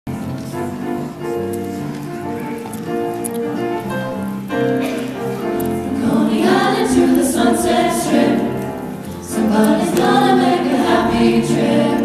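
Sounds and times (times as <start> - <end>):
vocal ensemble singing in harmony: 5.6 - 12.0.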